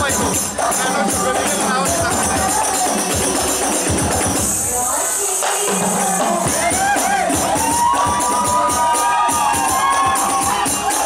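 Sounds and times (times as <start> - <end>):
hand-struck frame drums: 0.0 - 4.9, 5.6 - 11.0
jingling tambourine: 0.0 - 5.7.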